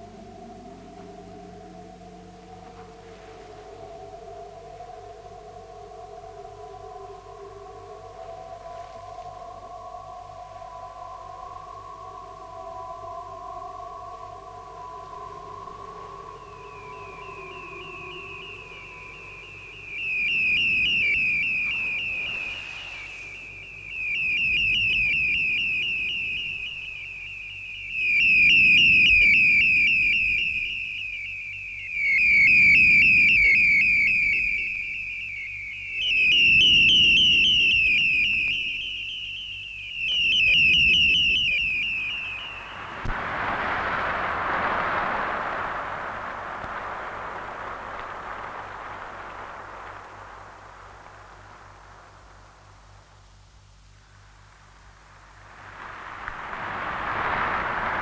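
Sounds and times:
high warbling tone: 0:00.0 - 0:46.1
steady held electronic tones: 0:00.0 - 0:58.0
wash of hiss: 0:21.4 - 0:23.9, 0:42.8 - 0:53.1, 0:54.2 - 0:58.0.

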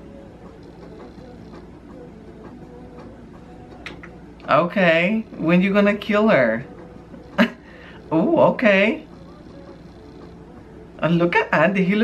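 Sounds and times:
quiet held tones: 0:00.0 - 0:12.0.

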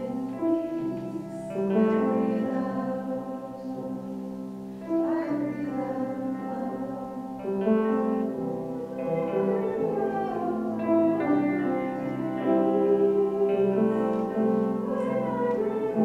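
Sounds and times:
slow gentle hymn music: 0:00.0 - 0:16.0.

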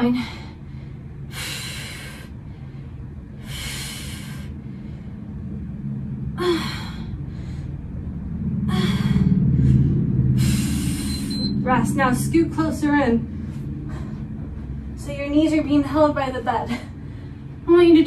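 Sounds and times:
woman breathing hard: 0:00.0 - 0:11.4, 0:13.2 - 0:15.0, 0:16.7 - 0:17.6
low steady rumble: 0:00.0 - 0:18.0.

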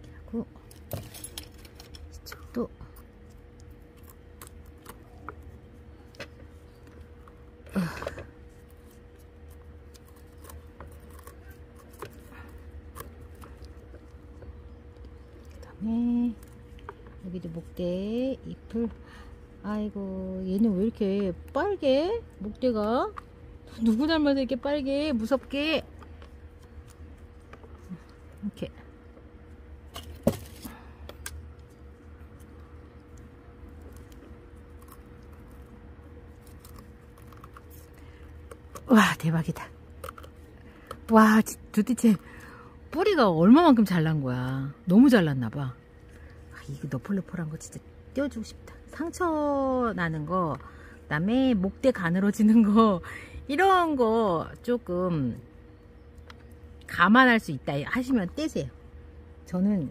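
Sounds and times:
faint steady hum: 0:00.0 - 0:59.9.

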